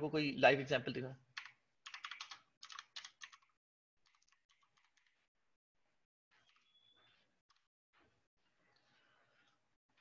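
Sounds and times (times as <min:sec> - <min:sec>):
computer keyboard typing: 0:01.4 - 0:05.2.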